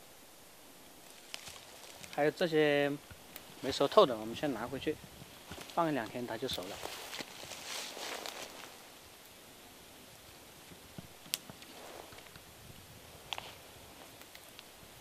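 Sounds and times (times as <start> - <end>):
twigs and leaves rustling: 0.8 - 9.4, 10.1 - 15.0.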